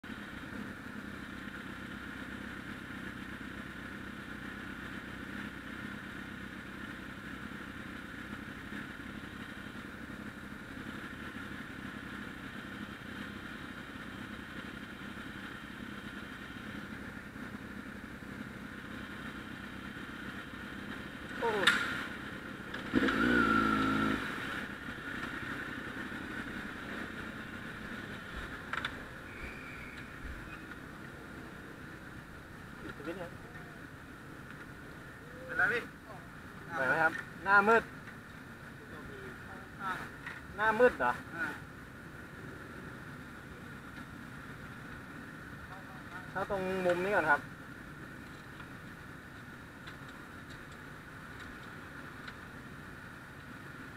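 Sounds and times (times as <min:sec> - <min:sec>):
motorcycle engines idling: 0:00.0 - 0:53.9.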